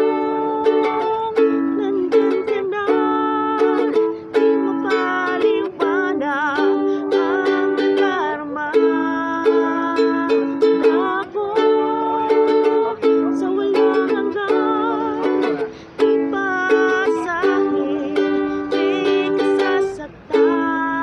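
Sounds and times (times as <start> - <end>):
person singing a ballad: 0.0 - 21.0
ukulele strumming chords: 0.0 - 21.0.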